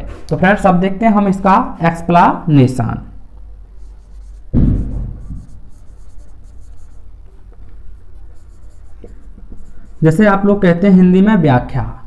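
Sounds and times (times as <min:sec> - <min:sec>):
marker pen on whiteboard: 0:03.3 - 0:11.3.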